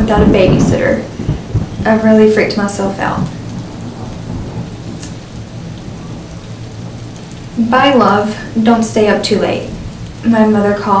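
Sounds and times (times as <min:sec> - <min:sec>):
steady rain: 0:00.0 - 0:11.0
thunder rumbling: 0:00.0 - 0:11.0.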